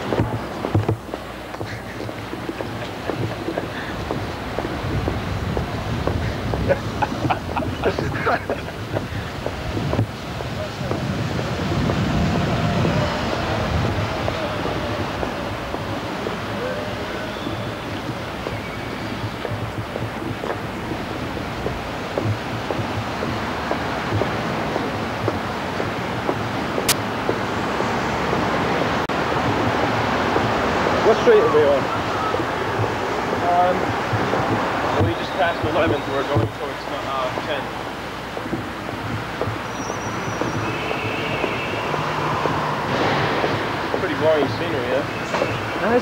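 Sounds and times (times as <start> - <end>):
city traffic noise: 0.0 - 46.0.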